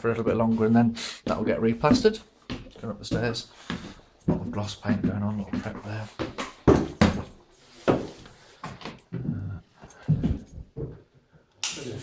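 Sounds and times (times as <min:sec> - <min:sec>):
footsteps on wooden stairs: 0:00.1 - 0:11.2.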